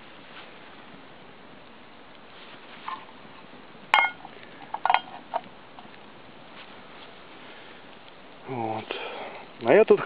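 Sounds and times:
metal pot clanking: 0:03.9 - 0:05.4
light metal clinks and taps: 0:03.9 - 0:05.9.

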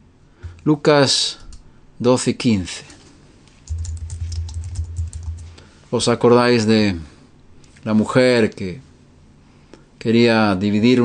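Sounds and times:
low steady hum: 0:02.9 - 0:11.0
keyboard typing clicks: 0:03.6 - 0:05.6.

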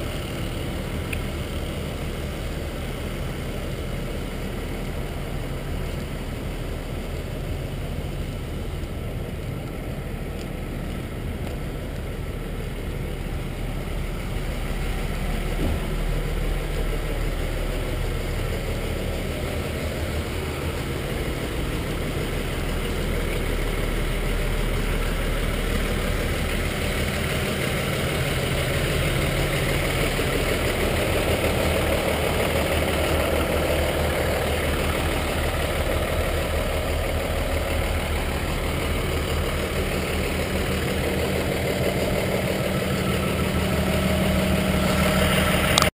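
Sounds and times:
truck diesel engine idling: 0:00.0 - 0:45.9.

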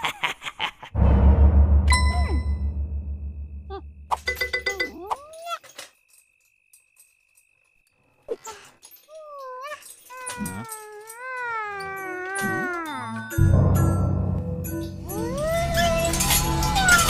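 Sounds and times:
cartoon girl crying: 0:08.5 - 0:13.4, 0:15.0 - 0:17.0.

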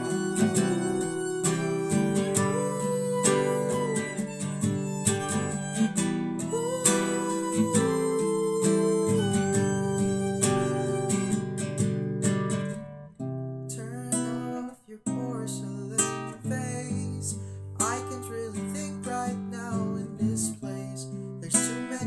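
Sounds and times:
violin melody: 0:00.0 - 0:12.0
acoustic guitar strumming: 0:00.0 - 0:22.0.

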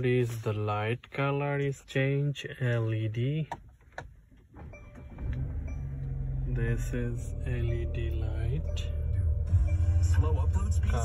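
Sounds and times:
low hum in car cabin: 0:00.0 - 0:11.0.

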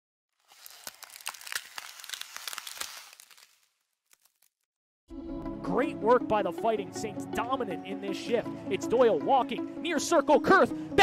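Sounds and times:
crackling rustling sound effect: 0:00.3 - 0:04.7.

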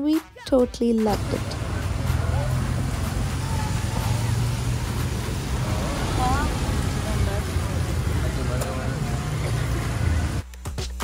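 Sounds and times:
low traffic rumble: 0:00.6 - 0:10.5
faint voices talking: 0:01.1 - 0:10.4.

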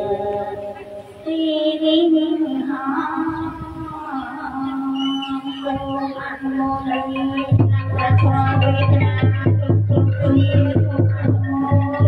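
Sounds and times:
voices singing devotional chant: 0:00.0 - 0:12.0.

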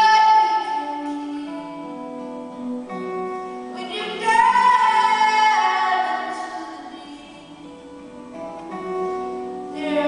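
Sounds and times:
woman singing: 0:00.0 - 0:02.2, 0:03.7 - 0:08.3, 0:09.6 - 0:10.0
acoustic guitar: 0:00.0 - 0:10.0.

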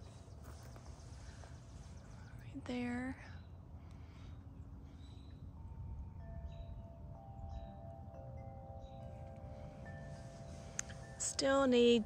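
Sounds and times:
faint chime ringing: 0:04.9 - 0:12.0.

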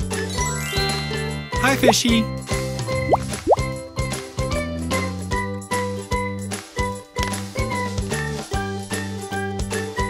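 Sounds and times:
cheerful children's music: 0:00.0 - 0:10.0.

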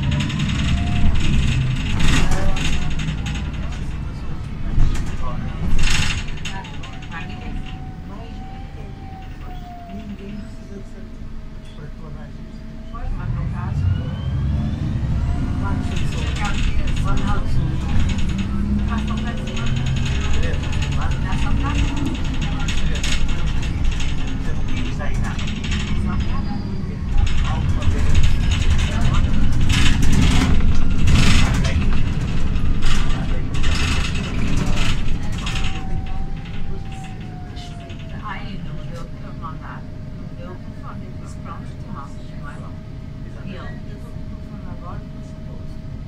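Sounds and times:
bus panels rattling: 0:00.0 - 0:10.5, 0:15.2 - 0:42.7
bus engine rumbling: 0:00.0 - 0:46.0.

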